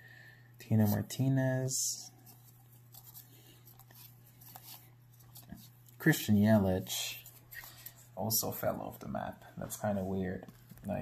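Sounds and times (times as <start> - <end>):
low steady hum: 0.0 - 11.0
cards rustling and ticking: 2.2 - 6.2.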